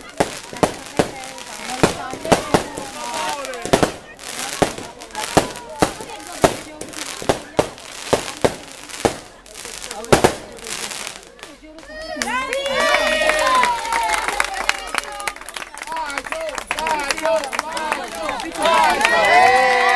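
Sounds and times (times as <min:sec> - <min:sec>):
fireworks sharp bangs: 0:00.0 - 0:11.6
crowd talking and calling: 0:00.0 - 0:19.9.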